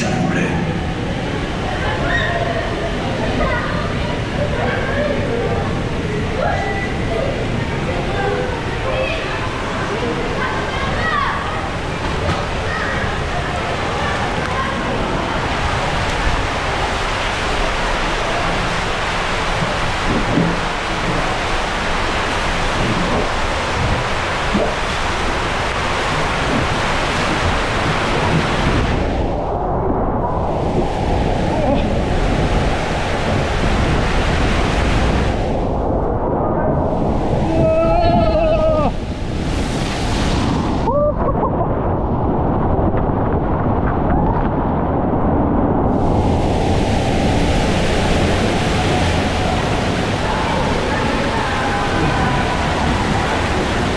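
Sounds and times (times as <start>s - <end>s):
water rushing along slide: 0.0s - 53.9s.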